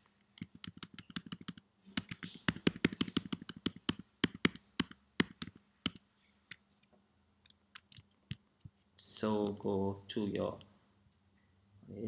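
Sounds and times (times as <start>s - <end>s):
computer keyboard keys clicking: 0.4s - 6.0s.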